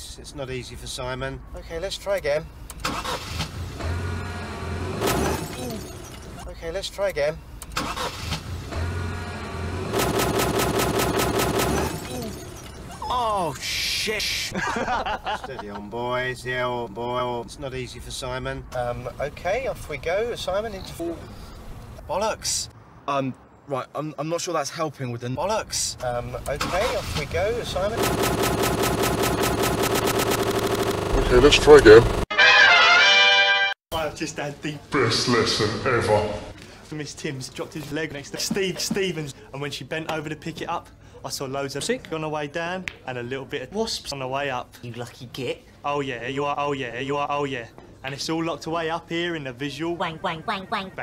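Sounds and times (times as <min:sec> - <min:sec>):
car engine humming: 0:02.9 - 0:06.5, 0:07.5 - 0:13.0, 0:27.2 - 0:32.2.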